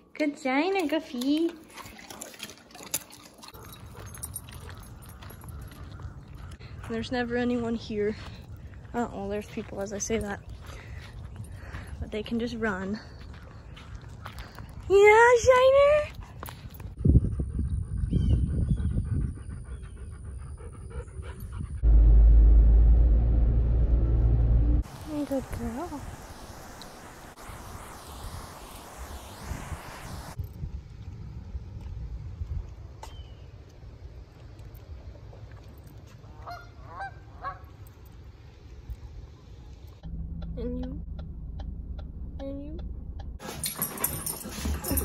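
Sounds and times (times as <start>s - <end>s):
dog panting: 16.1s - 21.8s, 43.4s - 45.0s
low steady rumble: 17.1s - 26.7s, 37.3s - 45.0s
geese honking: 36.4s - 37.7s
road noise inside car: 40.0s - 43.4s.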